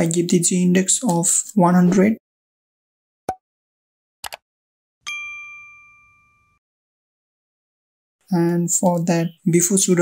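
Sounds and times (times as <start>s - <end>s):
notification bell ding: 5.0s - 6.6s.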